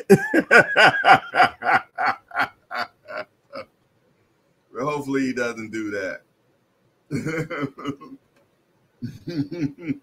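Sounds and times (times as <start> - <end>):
man laughing: 0.0 - 3.7, 7.1 - 8.2, 9.0 - 10.0.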